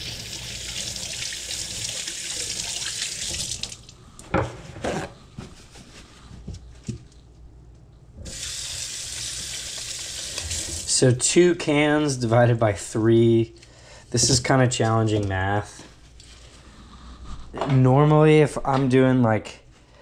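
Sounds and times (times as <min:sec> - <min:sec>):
faucet running into steel sink: 0:00.0 - 0:03.9, 0:08.2 - 0:10.9.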